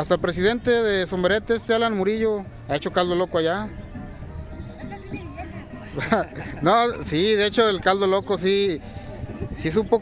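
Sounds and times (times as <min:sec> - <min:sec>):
distant music: 0:00.8 - 0:10.0.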